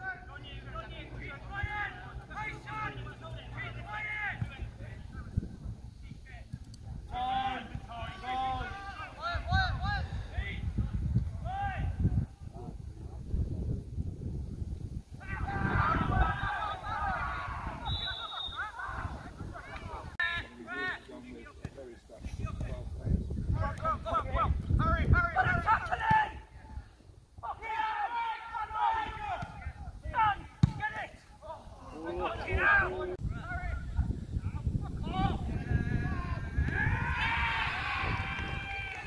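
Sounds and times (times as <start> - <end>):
players shouting to each other: 0.0 - 5.1, 7.1 - 10.6, 11.4 - 12.1, 15.2 - 21.1, 23.6 - 26.8, 27.4 - 39.0
wind rumble on microphone: 4.4 - 17.9, 18.9 - 20.2, 22.2 - 27.4, 32.4 - 39.0.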